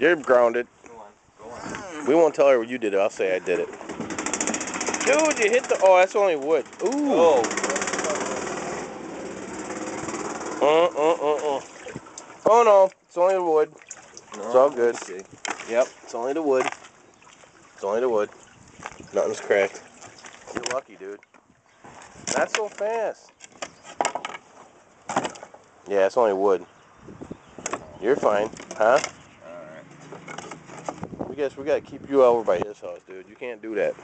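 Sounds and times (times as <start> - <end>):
small engine running: 3.7 - 11.1
wooden panels knocking and scraping: 21.8 - 25.6, 30.0 - 31.1.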